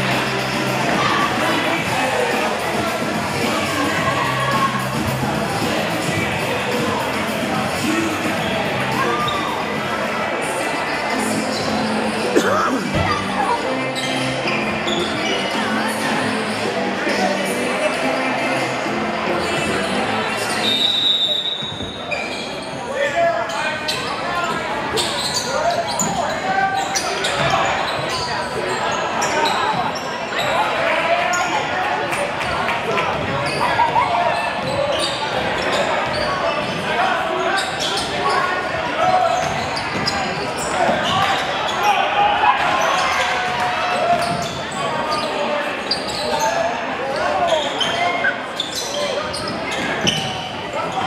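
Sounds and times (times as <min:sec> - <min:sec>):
players and spectators shouting: 0:00.0 - 0:18.7, 0:32.8 - 0:51.0.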